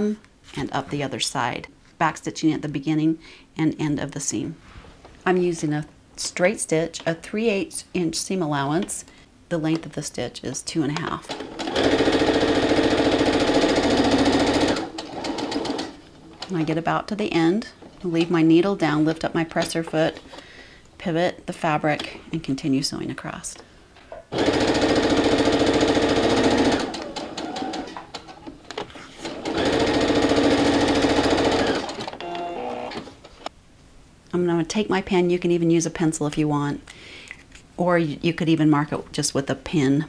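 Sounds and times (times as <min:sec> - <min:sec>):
electric sewing machine running: 0:11.4 - 0:15.9, 0:24.3 - 0:28.0, 0:29.2 - 0:33.0.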